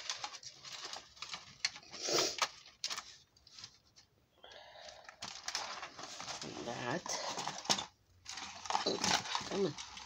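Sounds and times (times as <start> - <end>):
plastic box crackling: 0.0 - 4.0, 5.0 - 10.0.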